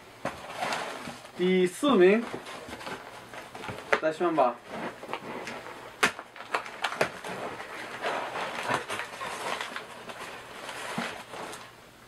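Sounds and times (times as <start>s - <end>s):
bag fabric and paper rustling: 0.4s - 11.7s.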